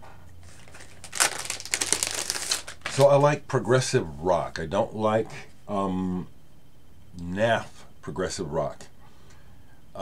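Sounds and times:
plastic crinkling and rustling: 0.4s - 3.2s.

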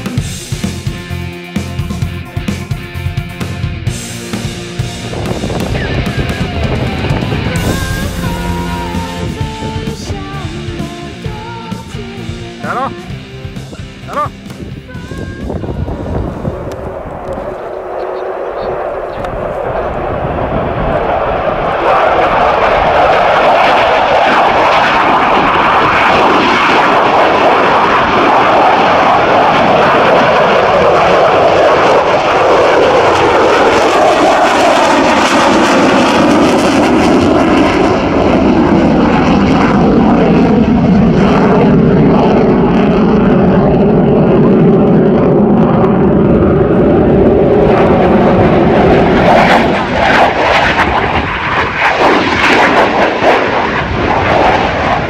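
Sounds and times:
jet engine roar: 0.0s - 55.0s.

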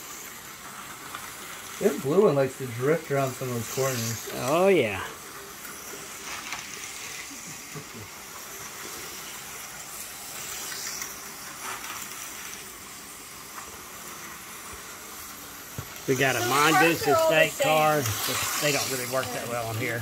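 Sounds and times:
small motors hissing: 0.0s - 20.0s.

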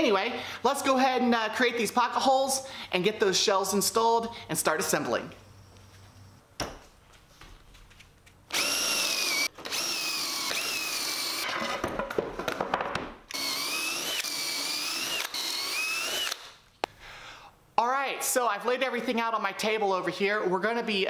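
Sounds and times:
cordless drill boring into wood: 8.5s - 11.6s, 13.3s - 16.6s.

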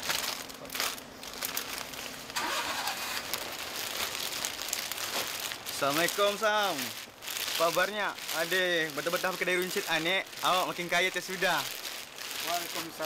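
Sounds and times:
plastic packets crinkling: 0.0s - 13.0s.

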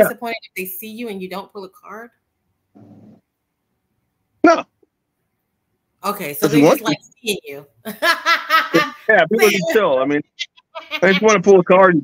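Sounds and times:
person speaking a word: 0.0s - 0.4s, 6.4s - 7.0s, 8.8s - 10.2s.

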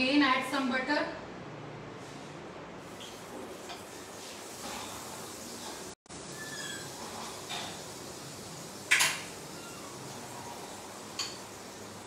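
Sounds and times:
butter sizzling in a pan: 3.8s - 10.1s, 10.7s - 12.0s.

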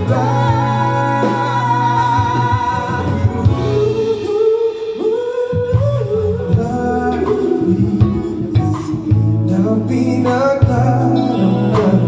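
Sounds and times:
bass: 0.0s - 12.0s
drums: 0.0s - 12.0s
electric guitars: 0.0s - 12.0s
man and woman singing together: 0.0s - 12.0s.

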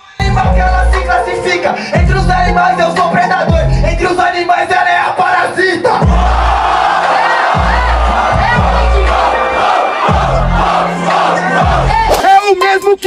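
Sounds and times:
deep bass beat: 0.2s - 4.4s, 5.9s - 6.8s, 7.5s - 9.4s, 10.0s - 13.0s
audience cheering and shouting: 4.7s - 12.6s.

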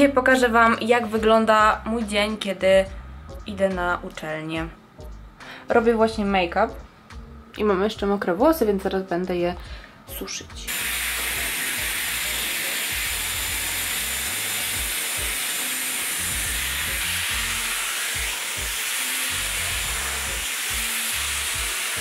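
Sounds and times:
background music with bass line: 0.0s - 15.4s, 16.1s - 22.0s
hot-air hair styler blowing: 10.7s - 22.0s.

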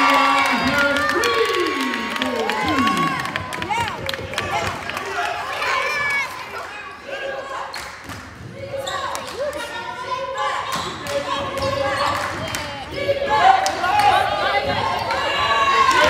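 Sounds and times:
voices of players and spectators: 0.0s - 16.0s.

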